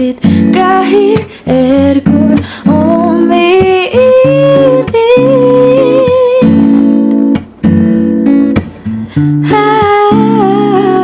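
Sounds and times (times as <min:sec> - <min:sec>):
woman singing long notes: 0:00.0 - 0:06.9, 0:09.5 - 0:11.0
acoustic guitar: 0:00.0 - 0:11.0.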